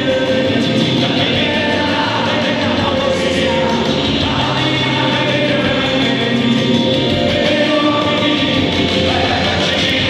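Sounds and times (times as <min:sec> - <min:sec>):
live rock band playing: 0:00.0 - 0:10.0
man singing loudly: 0:00.0 - 0:10.0.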